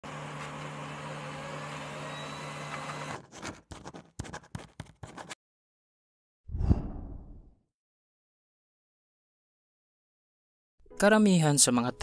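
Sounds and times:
marker pen writing on whiteboard: 0:03.2 - 0:05.4.

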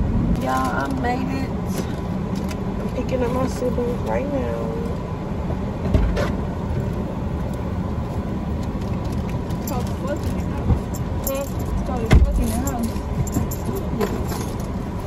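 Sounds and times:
car door thump: 0:12.1 - 0:12.4.

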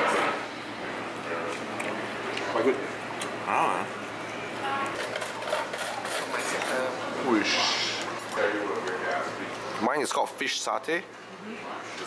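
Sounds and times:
background voices of diners: 0:00.0 - 0:12.0.

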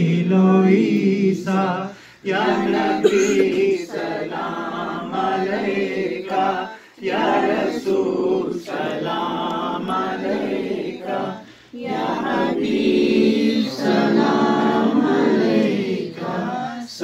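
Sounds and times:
unaccompanied voices singing: 0:00.0 - 0:17.0.

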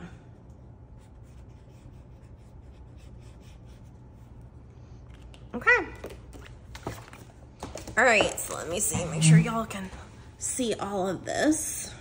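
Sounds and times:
marker scratching on paper: 0:01.0 - 0:03.9.

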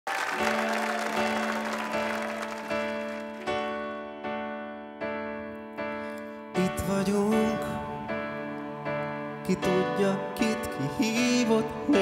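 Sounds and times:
audience applause: 0:00.0 - 0:03.8
keyboard chords: 0:00.2 - 0:12.0.

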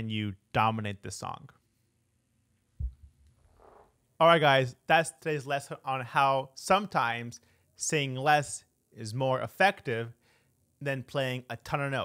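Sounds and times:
dull low thump: 0:02.8 - 0:03.8
faint soft breath: 0:10.2 - 0:10.7.

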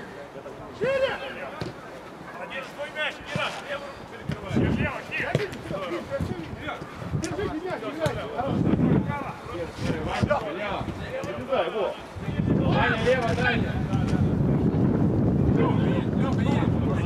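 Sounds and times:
footballers shouting: 0:00.7 - 0:09.4
ball being kicked: 0:05.2 - 0:05.7, 0:07.2 - 0:08.3.

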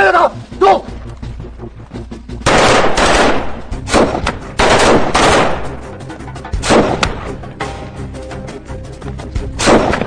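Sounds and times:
automatic gunfire bursts: 0:02.5 - 0:05.6.

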